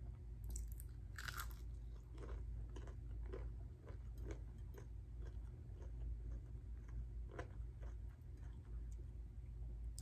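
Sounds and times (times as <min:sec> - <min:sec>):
chewing crunches: 0:00.5 - 0:09.0.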